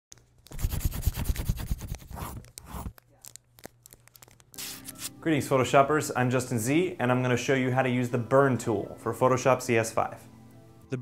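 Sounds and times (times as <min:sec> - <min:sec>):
paper scratching and crinkling: 0:00.2 - 0:05.1.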